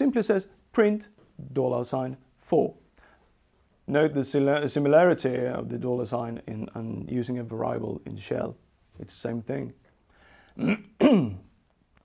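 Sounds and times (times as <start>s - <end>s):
man clearing his throat: 10.6s - 11.6s.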